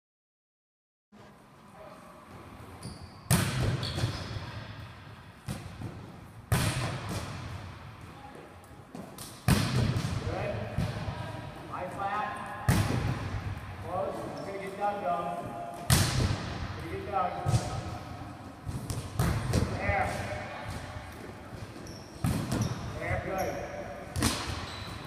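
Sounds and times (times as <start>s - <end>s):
volleyball spike smacks echoing: 15.8s - 16.7s.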